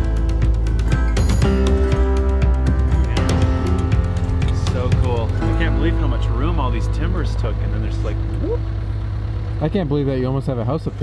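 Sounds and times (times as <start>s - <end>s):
background music: 0.0s - 10.4s
low engine hum: 0.0s - 11.0s
people talking: 4.5s - 8.6s, 9.6s - 11.0s.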